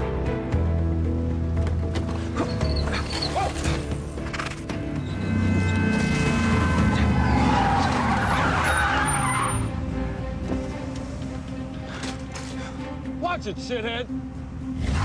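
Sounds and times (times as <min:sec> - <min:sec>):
background music score: 0:00.0 - 0:15.0
car tyres squealing: 0:02.2 - 0:03.9, 0:05.0 - 0:09.8.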